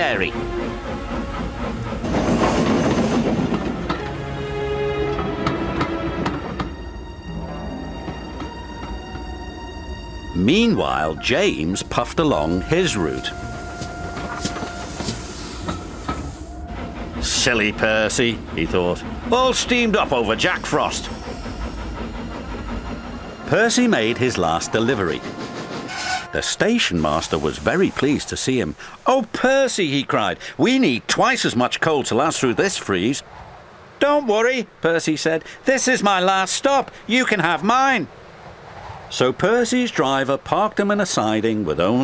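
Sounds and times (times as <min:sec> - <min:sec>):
steam locomotive hissing and chuffing: 0:00.0 - 0:07.0, 0:10.4 - 0:30.8
held musical notes: 0:03.8 - 0:21.2.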